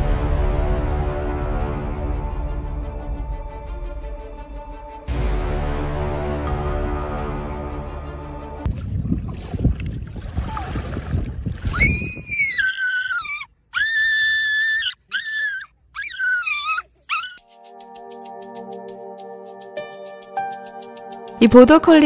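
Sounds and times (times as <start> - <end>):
music: 0.0 - 8.7, 17.4 - 22.0
dog howling: 11.8 - 17.4.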